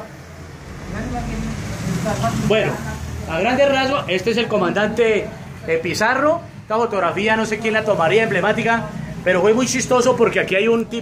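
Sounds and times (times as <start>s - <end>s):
faint crowd voices: 0.8s - 11.0s.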